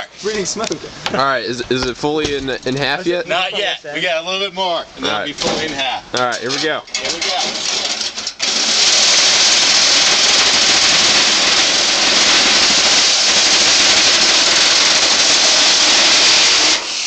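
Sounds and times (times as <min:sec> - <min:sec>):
circular saw cutting metal: 0:07.0 - 0:17.0.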